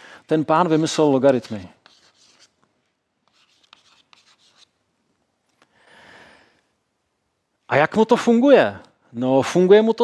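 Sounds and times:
chalk scratching on blackboard: 0:00.6 - 0:02.6, 0:03.2 - 0:04.8.

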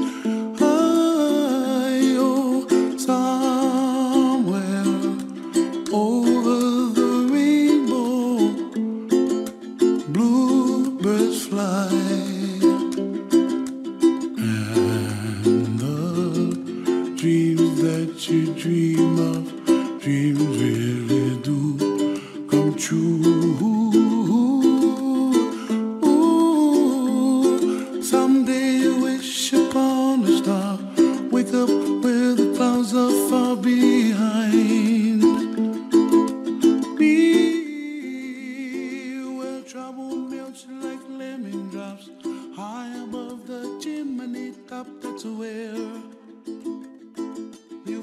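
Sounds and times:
ukulele melody: 0:00.0 - 0:48.0.

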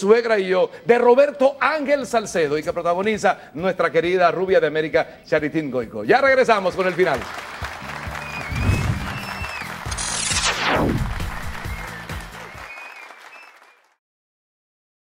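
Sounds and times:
audience applause: 0:06.7 - 0:10.0, 0:10.9 - 0:14.0
falling whoosh: 0:08.4 - 0:11.6.

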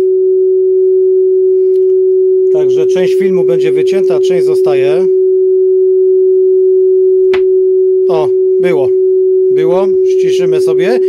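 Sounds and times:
loud steady sine tone: 0:00.0 - 0:11.0.

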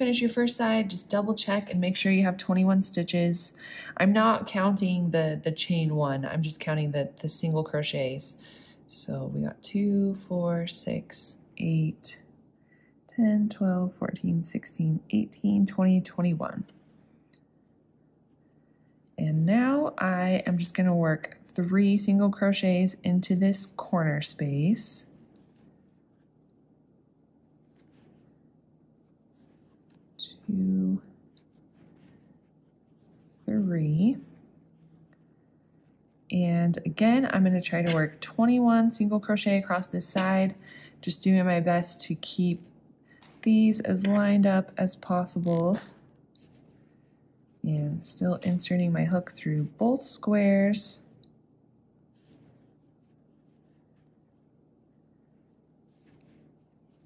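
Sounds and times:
crochet hook rubbing yarn: 0:29.0 - 0:35.0, 0:52.2 - 0:54.4, 0:55.9 - 0:57.0.

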